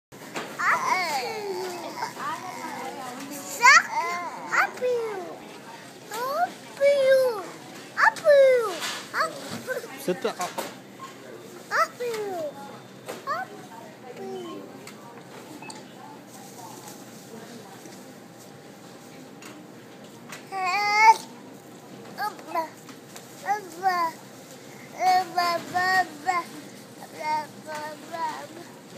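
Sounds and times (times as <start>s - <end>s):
toddler singing: 25.0s - 28.7s.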